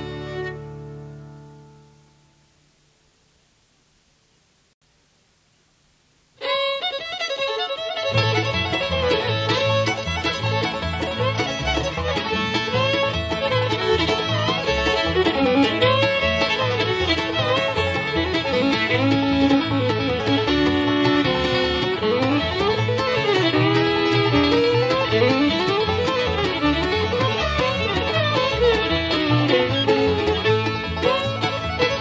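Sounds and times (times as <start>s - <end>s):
fiddle tune: 0.0s - 2.0s, 6.4s - 32.0s
bass and guitars playing: 0.0s - 2.4s, 7.4s - 32.0s.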